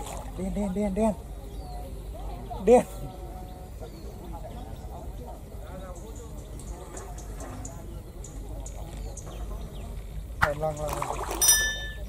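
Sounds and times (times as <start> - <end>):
bell-like ding: 11.4 - 12.0.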